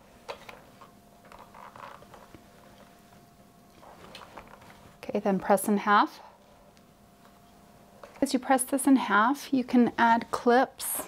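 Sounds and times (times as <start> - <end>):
faint steady hum: 0.0 - 11.0
fabric rustling: 0.4 - 5.1.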